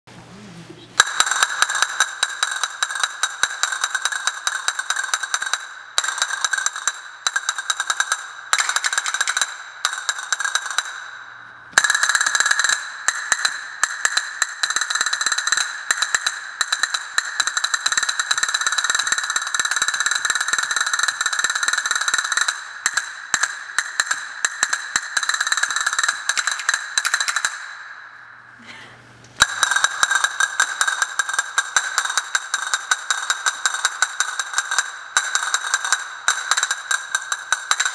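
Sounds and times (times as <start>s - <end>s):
castanets clicking in rolls: 1.0s - 27.8s, 29.4s - 37.9s.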